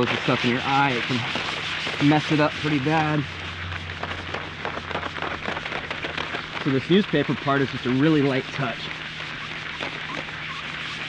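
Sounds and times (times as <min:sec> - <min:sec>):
newspaper rubbing on glass: 0:00.0 - 0:11.0
steady low hum: 0:00.0 - 0:11.0.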